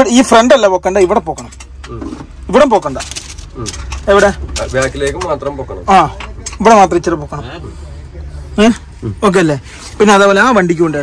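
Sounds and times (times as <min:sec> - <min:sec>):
man speaking: 0:02.5 - 0:11.0.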